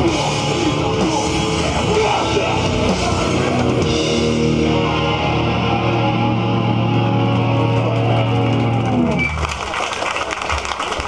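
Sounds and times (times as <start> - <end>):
distorted electric guitars and bass: 0.0 - 9.7.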